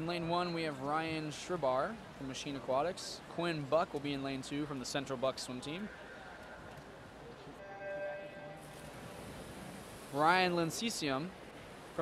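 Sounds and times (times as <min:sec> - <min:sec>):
pool hall noise: 0:00.0 - 0:12.0.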